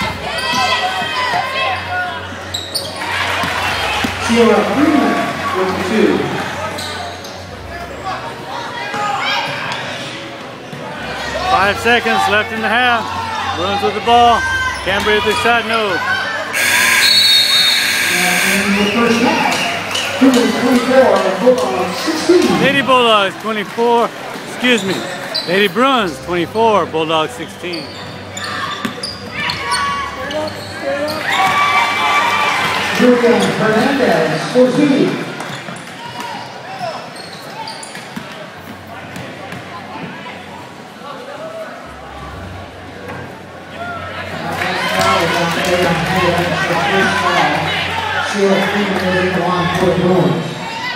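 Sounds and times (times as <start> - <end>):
crowd and player voices: 0.0 - 50.9
scoreboard buzzer: 16.6 - 19.4.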